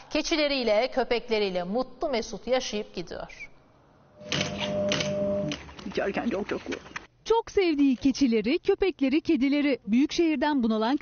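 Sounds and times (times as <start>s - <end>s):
steady held tone: 4.2s - 5.6s.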